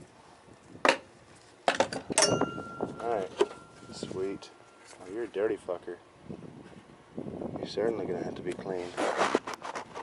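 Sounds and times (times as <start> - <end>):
hand tools clinking on metal: 1.9 - 5.1
faint thin tone: 2.2 - 5.2.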